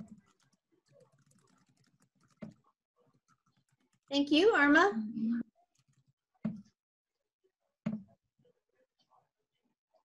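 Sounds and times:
keyboard typing and clicking: 0.0 - 2.6.

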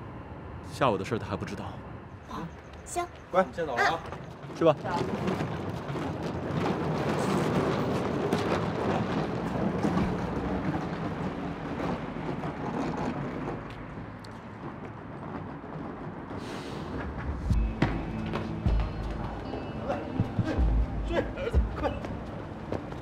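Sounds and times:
suitcase wheels rolling on pavement: 3.1 - 19.8.

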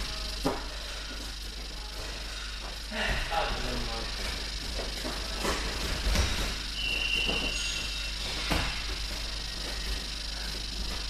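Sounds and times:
low hall hum: 0.0 - 11.0.

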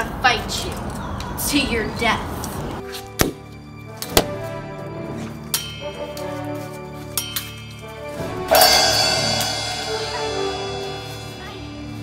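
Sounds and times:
background music with held tones: 2.8 - 12.0.

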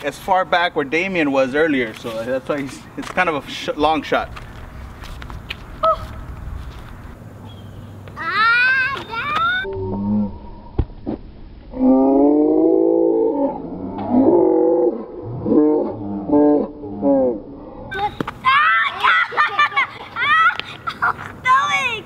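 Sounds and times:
excited high-pitched shouting: 8.2 - 9.7, 17.9 - 20.8, 21.4 - 22.0.

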